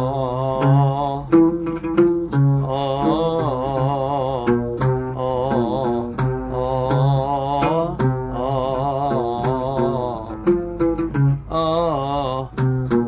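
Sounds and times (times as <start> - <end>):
oud melody: 0.0 - 13.0.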